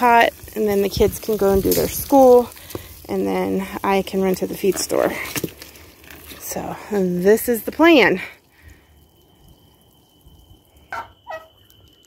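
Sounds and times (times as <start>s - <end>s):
poultry calling: 10.9s - 11.6s.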